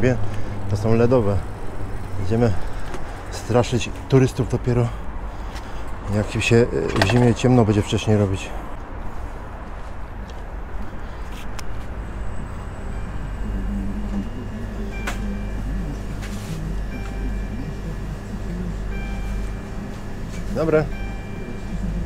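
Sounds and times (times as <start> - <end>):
steady low rumble: 0.0 - 20.3
background music in a shop: 11.2 - 22.0.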